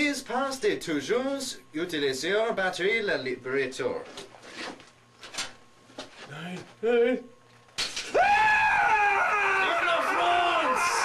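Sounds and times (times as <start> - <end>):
man screaming in pain: 8.2 - 11.0.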